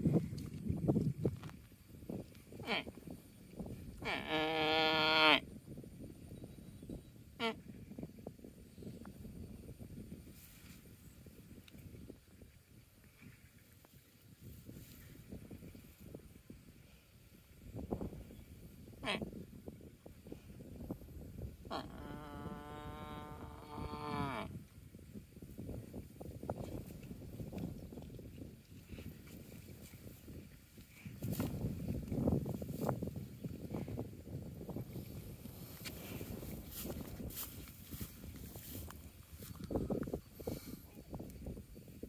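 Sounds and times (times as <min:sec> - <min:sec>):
water buffalo calling: 0:04.0 - 0:05.4, 0:21.7 - 0:24.5
animal grazing on dry grass: 0:34.8 - 0:40.6.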